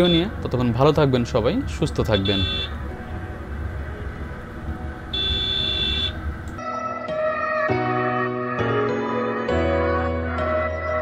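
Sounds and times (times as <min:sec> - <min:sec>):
motorcycle engine and wind rumble: 0:00.0 - 0:06.5
vehicle horn: 0:02.1 - 0:03.0, 0:05.1 - 0:06.3
music: 0:06.6 - 0:11.0.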